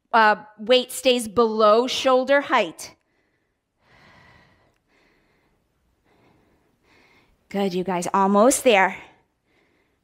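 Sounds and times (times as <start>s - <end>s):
woman breathing heavily: 3.0s - 7.5s, 9.1s - 10.0s.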